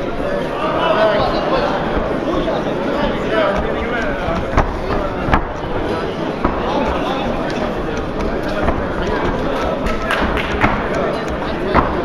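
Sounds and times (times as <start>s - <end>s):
crowd voices din: 0.0s - 12.0s.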